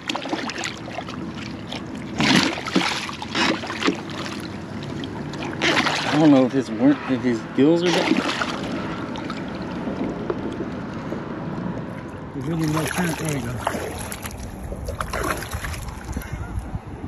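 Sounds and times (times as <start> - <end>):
drum splashing in water: 0.0 - 6.4, 7.8 - 10.2, 12.6 - 15.8
water noise: 0.0 - 17.0
wind: 0.0 - 17.0.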